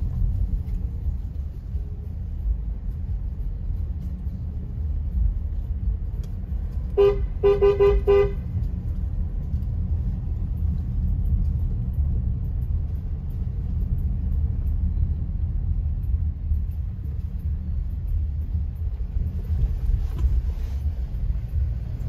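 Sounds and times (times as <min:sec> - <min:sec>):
car engine and tyres rumbling: 0:00.0 - 0:22.0.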